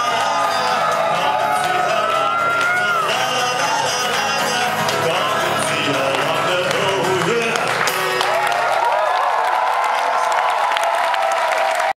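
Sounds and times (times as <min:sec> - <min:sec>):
voices calling out in crowd: 0:00.0 - 0:08.8
audience applauding and cheering: 0:00.0 - 0:12.0.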